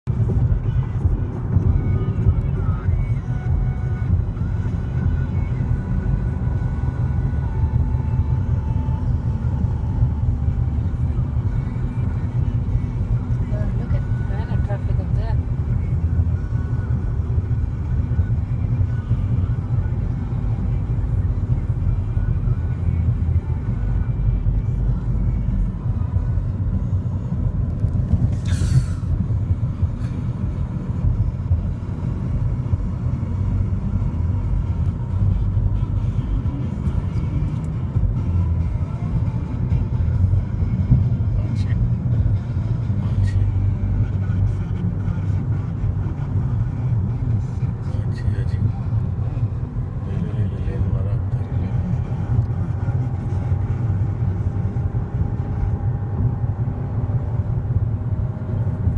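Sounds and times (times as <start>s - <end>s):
car road and engine rumble: 0.0s - 58.9s.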